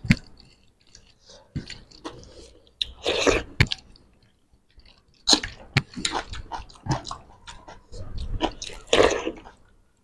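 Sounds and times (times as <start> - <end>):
chewing and mouth noises: 0.0 - 9.8.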